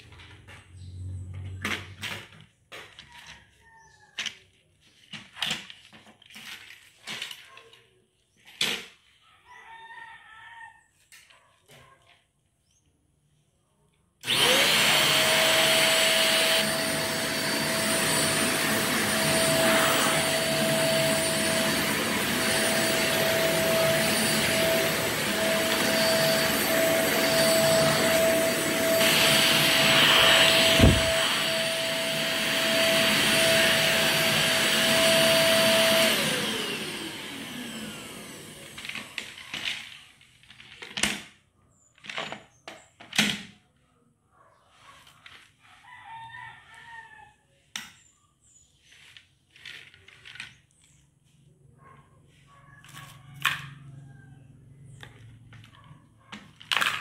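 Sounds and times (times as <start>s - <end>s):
vacuum cleaner motor whining: 14.2s - 40.0s.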